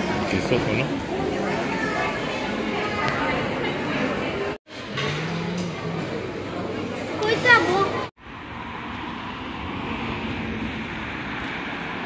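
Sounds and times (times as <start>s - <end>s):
cars driving past: 7.4s - 12.0s.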